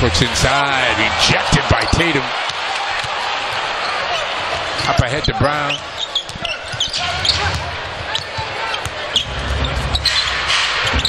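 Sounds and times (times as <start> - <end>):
sneaker squeaks: 4.8 - 11.0.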